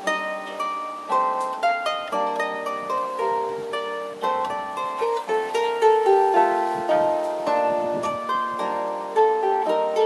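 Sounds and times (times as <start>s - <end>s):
solo harp playing: 0.0s - 10.0s.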